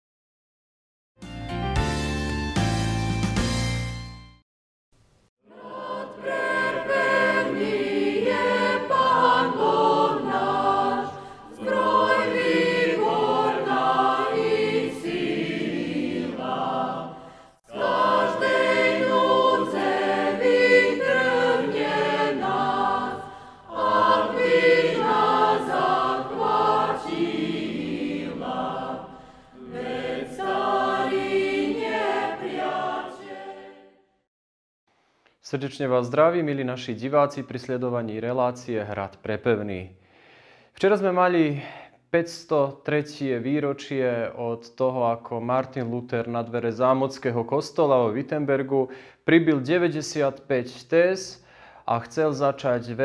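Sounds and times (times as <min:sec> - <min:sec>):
choir singing: 0:05.5 - 0:34.1.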